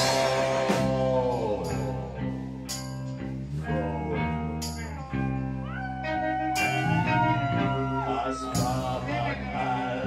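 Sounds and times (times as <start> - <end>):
bass guitar: 0.0 - 10.0
electric guitar chords: 0.0 - 10.0.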